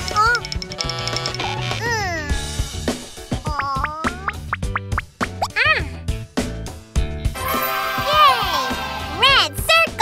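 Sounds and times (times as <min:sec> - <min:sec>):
light children's music: 0:00.0 - 0:10.0.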